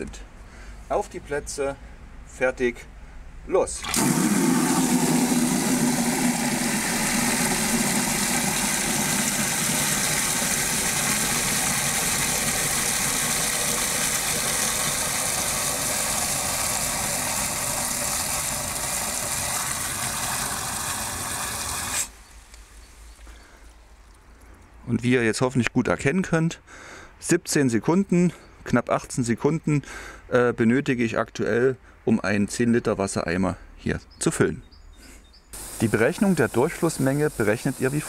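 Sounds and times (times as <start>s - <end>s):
tap water rushing into bucket: 3.8s - 22.2s, 35.6s - 38.0s.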